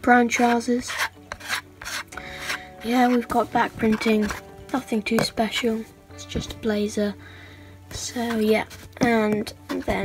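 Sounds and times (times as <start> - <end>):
plastic turntable scraping: 0.4 - 4.5.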